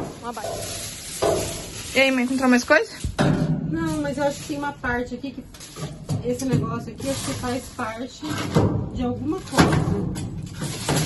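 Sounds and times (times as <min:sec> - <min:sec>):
objects rustling and scraping: 0:00.0 - 0:11.0.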